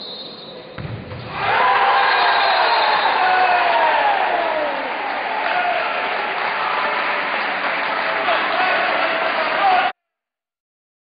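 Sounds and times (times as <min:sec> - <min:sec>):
crowd shouting: 0:01.4 - 0:10.0
clapping: 0:03.7 - 0:09.9.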